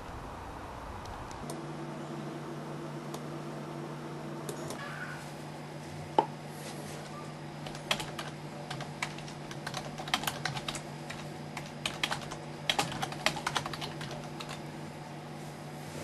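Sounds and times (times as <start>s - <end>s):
computer keyboard typing: 7.6s - 14.6s.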